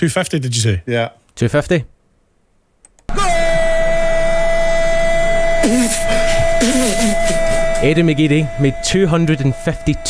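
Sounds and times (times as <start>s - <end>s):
loud horn-like tone: 3.1s - 10.0s
person speaking: 5.6s - 9.6s.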